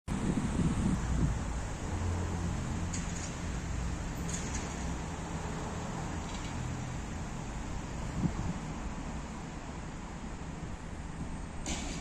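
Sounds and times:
road traffic rumble: 0.1s - 12.0s.

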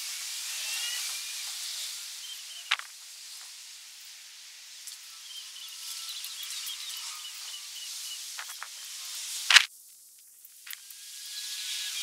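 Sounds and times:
steady high hiss: 0.0s - 12.0s.

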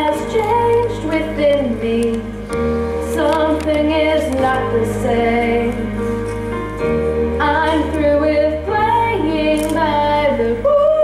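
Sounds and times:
girl singing slow melody: 0.0s - 2.5s, 7.4s - 11.0s
instrumental accompaniment: 0.0s - 11.0s.

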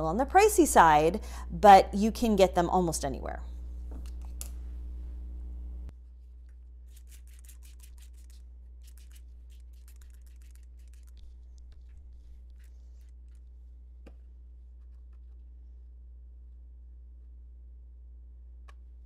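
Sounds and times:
steady low hum: 0.0s - 19.0s
spray bottle squirting: 6.9s - 11.2s.

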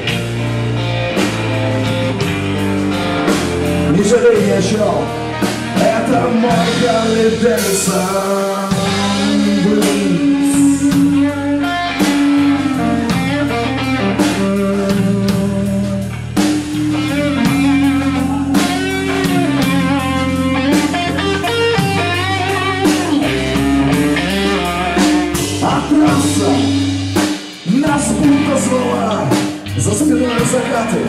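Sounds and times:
electric guitar lead: 0.0s - 31.0s
steady drum beat: 0.0s - 31.0s.

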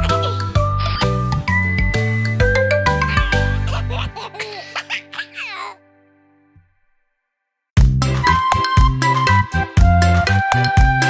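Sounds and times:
baby giggling: 0.0s - 1.3s, 2.9s - 5.8s.

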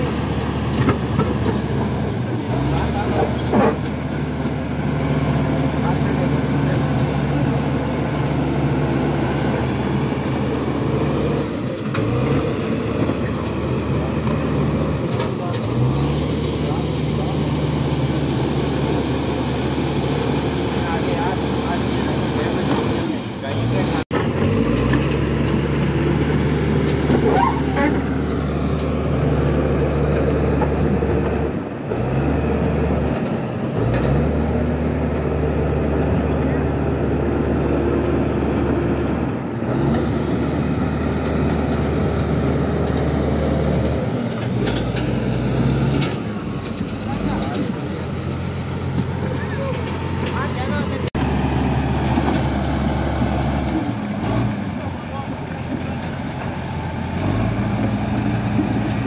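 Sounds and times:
bulldozer diesel engine: 0.0s - 59.0s.

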